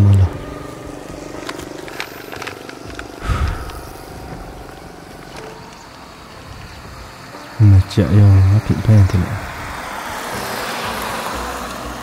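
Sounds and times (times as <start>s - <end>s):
outdoor background noise: 0.0s - 12.0s
paper wrapper crinkling and tearing: 1.4s - 3.8s
man talking: 7.6s - 9.4s.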